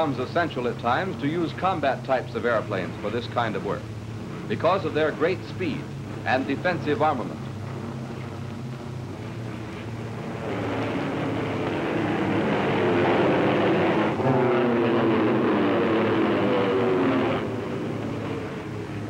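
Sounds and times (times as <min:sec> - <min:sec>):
propeller aircraft flying past: 0:00.0 - 0:19.0.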